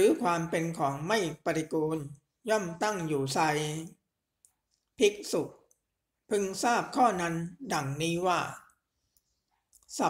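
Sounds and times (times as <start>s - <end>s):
person reading aloud: 0.0s - 4.1s, 4.9s - 8.9s, 9.8s - 10.0s.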